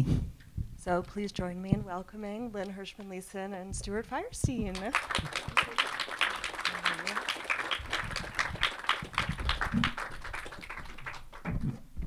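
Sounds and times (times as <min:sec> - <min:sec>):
audience applauding: 0:04.7 - 0:11.8.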